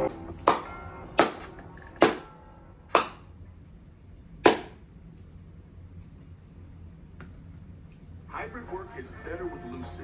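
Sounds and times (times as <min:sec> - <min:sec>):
sharp clap-like hits: 0:00.4 - 0:02.3, 0:02.9 - 0:03.3, 0:04.4 - 0:04.8.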